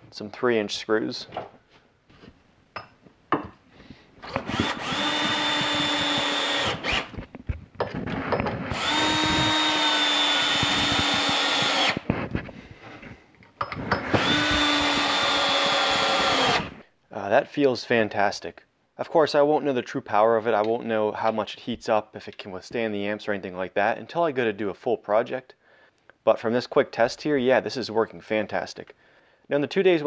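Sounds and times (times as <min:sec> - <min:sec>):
cordless drill driving screws: 0:04.2 - 0:07.2, 0:08.5 - 0:12.1, 0:13.8 - 0:16.8.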